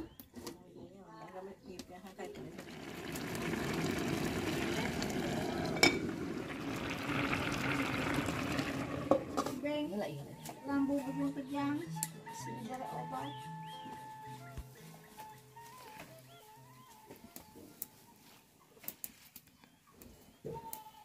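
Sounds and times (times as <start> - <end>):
background music: 9.4 - 18.6.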